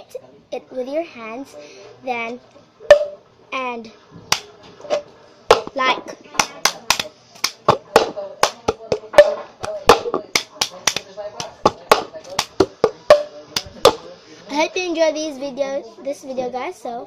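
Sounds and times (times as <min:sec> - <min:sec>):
cup tapped and slapped on surface: 0:02.9 - 0:03.2, 0:05.5 - 0:05.8, 0:06.4 - 0:14.0
hand claps: 0:06.4 - 0:09.0, 0:09.6 - 0:14.0.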